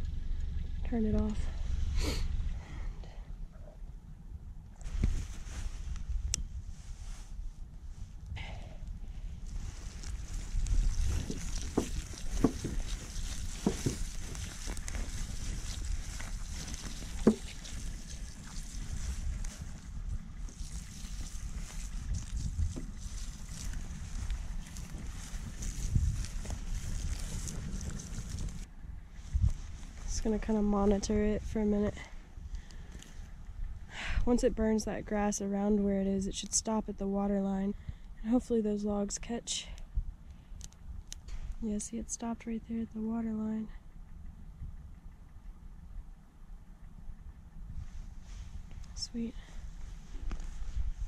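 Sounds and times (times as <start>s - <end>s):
fire crackling: 0.0s - 34.4s
low fire rumble: 0.0s - 51.0s
fire hissing: 1.6s - 2.7s.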